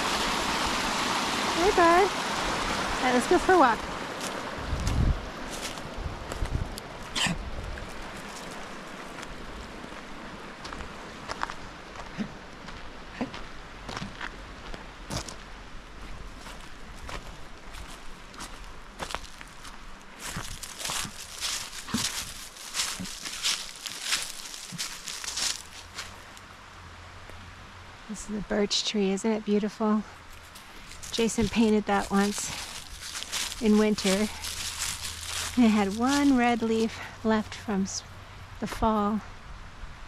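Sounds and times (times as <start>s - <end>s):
stream rushing: 0.0s - 40.0s
footsteps on leaves and gravel: 4.0s - 15.4s, 16.2s - 26.4s, 30.2s - 37.7s.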